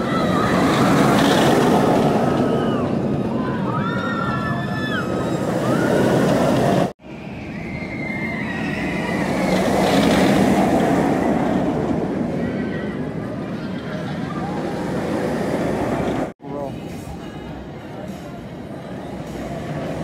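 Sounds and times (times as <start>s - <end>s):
riders screaming: 0.0s - 6.7s, 7.5s - 10.4s
roller coaster train rumble: 0.0s - 20.0s.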